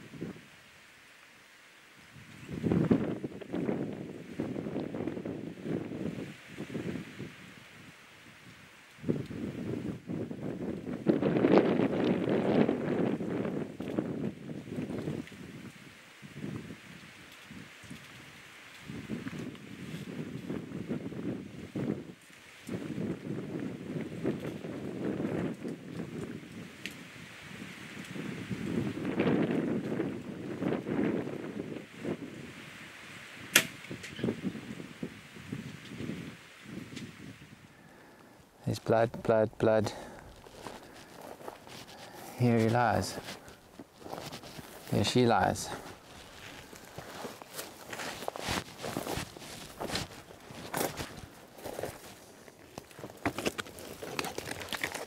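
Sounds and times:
wind buffeting microphone: 2.2 - 18.2, 18.8 - 37.7, 38.7 - 52.2
sharp click: 33.5 - 34.2.

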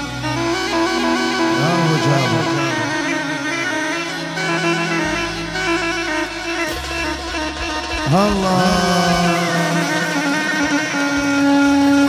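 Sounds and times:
reedy double pipe with drone: 0.0 - 12.0.

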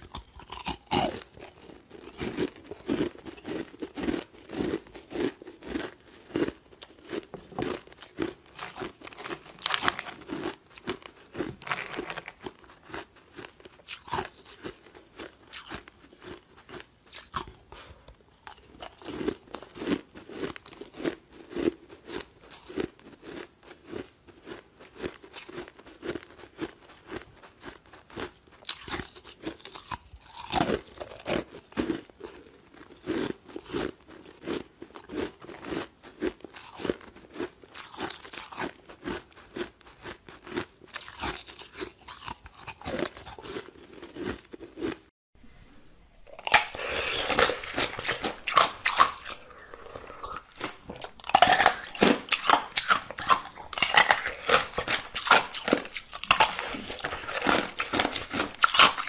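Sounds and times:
ice cubes being chewed: 0.0 - 45.1, 46.2 - 59.0.

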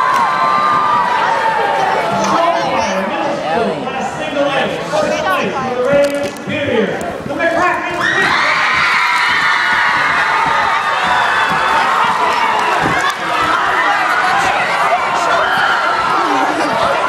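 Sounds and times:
crowd cheering and screaming: 0.0 - 2.6, 8.0 - 17.0.

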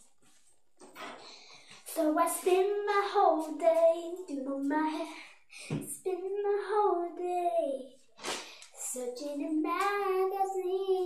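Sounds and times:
child singing: 1.9 - 8.0, 8.8 - 11.0.

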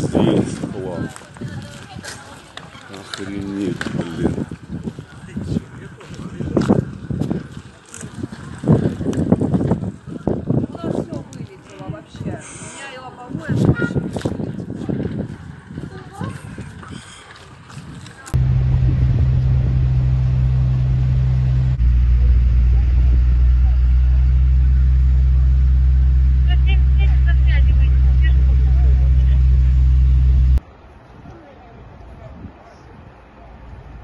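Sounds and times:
vehicle engine idling: 18.4 - 30.6.

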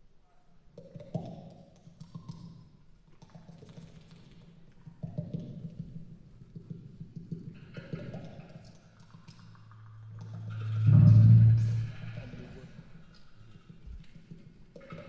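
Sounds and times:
clattering percussion: 9.1 - 15.0
low droning tone: 9.8 - 13.2.

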